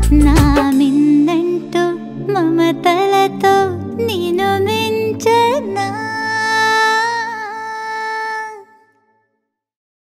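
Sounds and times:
soft musical backing: 0:00.0 - 0:09.0.

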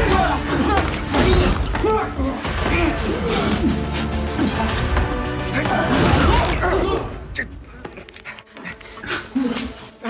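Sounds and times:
man panting and gasping: 0:07.5 - 0:10.0.

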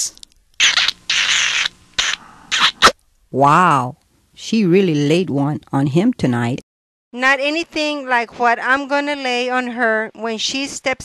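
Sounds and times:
exaggerated kissing noises: 0:00.0 - 0:03.0
sharp lip pop: 0:00.6 - 0:03.0.

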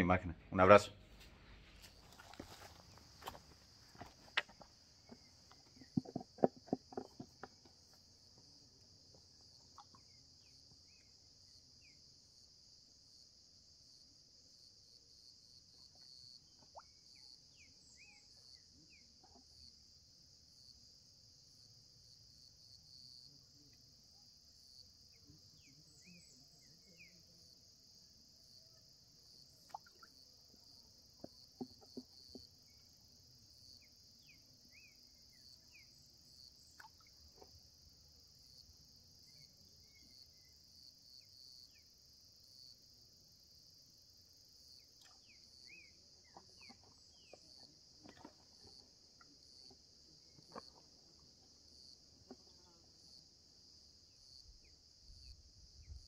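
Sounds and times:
high-pitched insect chorus: 0:01.6 - 0:56.0.

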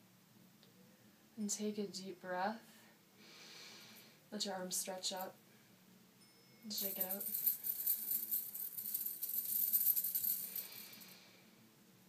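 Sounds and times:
bangles jingling: 0:06.2 - 0:11.2.

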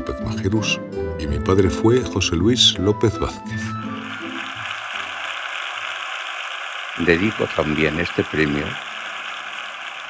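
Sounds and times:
steady mechanical noise: 0:03.7 - 0:10.0.

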